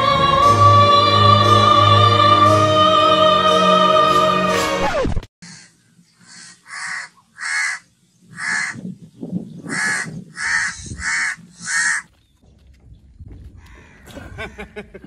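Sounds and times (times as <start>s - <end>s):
bird calling: 5.4s - 8.9s, 9.6s - 12.4s.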